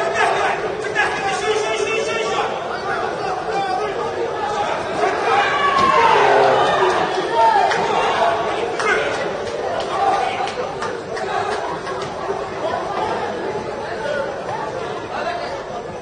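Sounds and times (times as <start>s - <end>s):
spectator chatter in echoing hall: 0.0s - 16.0s.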